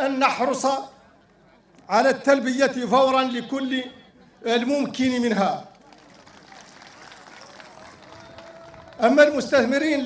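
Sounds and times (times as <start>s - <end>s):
faint crowd murmur: 0.0s - 10.0s.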